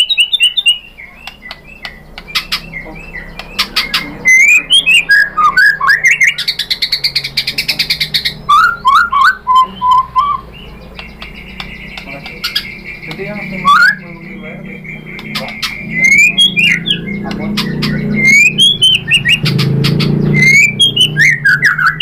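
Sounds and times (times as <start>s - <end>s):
bird singing whistles and clicks: 0.0s - 7.0s, 7.9s - 22.0s
buzzy bird trill: 0.0s - 22.0s.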